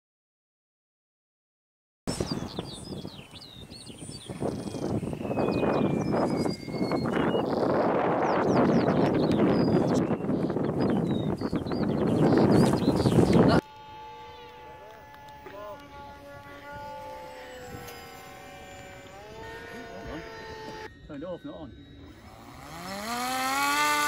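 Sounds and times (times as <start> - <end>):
small birds chirping: 2.1 - 24.0
wind buffeting microphone: 2.1 - 24.0.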